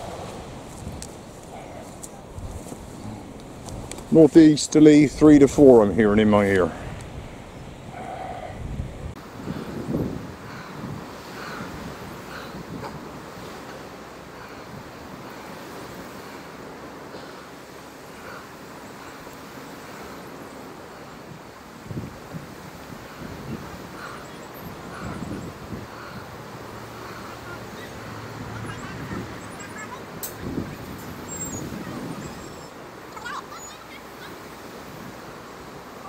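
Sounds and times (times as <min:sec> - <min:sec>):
wind buffeting microphone: 0:00.0 - 0:17.3, 0:19.4 - 0:33.2
sea surf hiss: 0:00.0 - 0:36.0.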